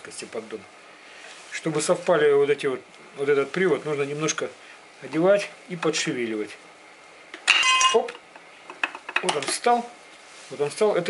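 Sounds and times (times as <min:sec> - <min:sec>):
short metallic clink: 0:07.5 - 0:08.1.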